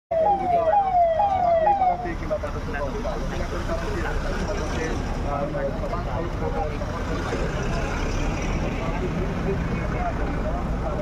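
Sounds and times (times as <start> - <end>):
siren falling sweeps: 0.1 - 2.1
cars passing rumble: 0.1 - 11.0.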